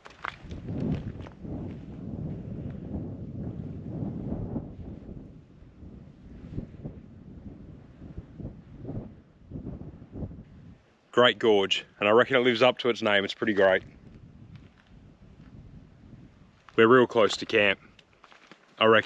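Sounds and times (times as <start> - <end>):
footsteps scuffing on rock: 0.0 - 1.4, 16.6 - 19.0
wind rumbling on microphone: 0.0 - 18.2.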